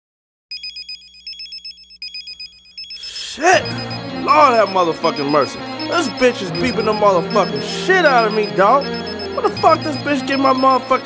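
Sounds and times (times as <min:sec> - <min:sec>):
pager alert beeping: 0:00.5 - 0:11.0.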